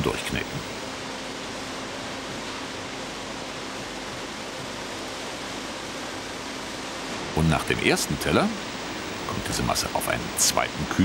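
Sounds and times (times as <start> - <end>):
faint low hum: 0.0 - 0.8, 7.3 - 11.0.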